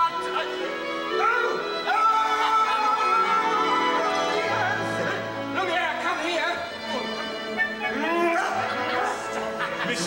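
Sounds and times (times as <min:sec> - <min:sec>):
orchestra playing: 0:00.0 - 0:10.0.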